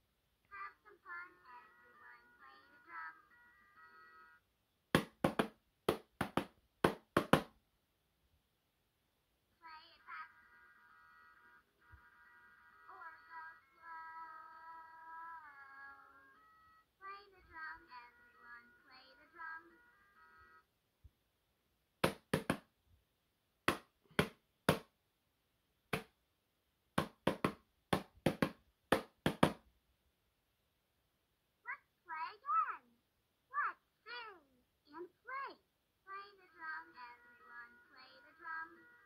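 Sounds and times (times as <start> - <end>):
voice sounds through small speaker: 0.4 - 4.4, 9.5 - 20.7, 31.6 - 39.0
toy electronic tune: 1.5 - 4.4, 15.1 - 16.9
toy drum hits: 27.0 - 29.6.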